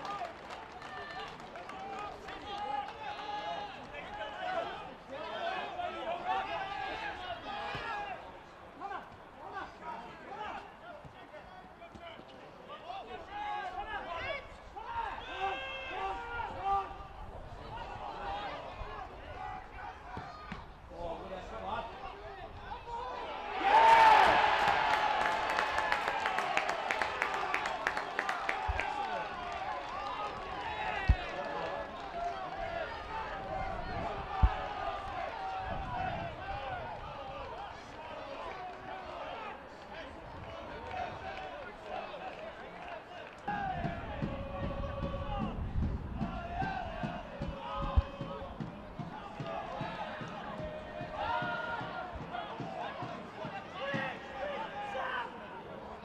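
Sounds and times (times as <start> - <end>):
players and spectators shouting: 1.8 - 11.6, 12.7 - 56.0.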